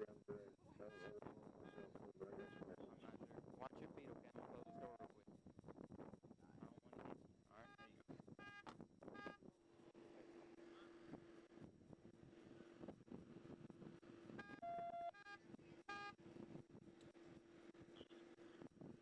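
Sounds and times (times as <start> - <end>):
faint steady hum: 0.0 - 19.0
short electronic beeps: 14.4 - 16.2.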